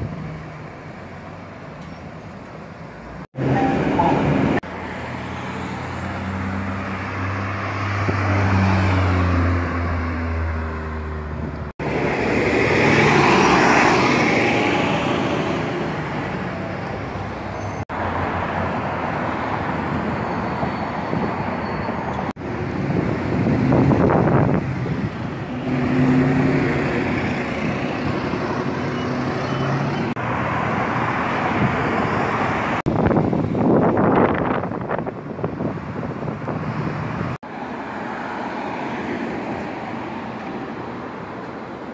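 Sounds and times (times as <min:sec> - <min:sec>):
cars and trucks driving by: 0:00.0 - 0:41.9.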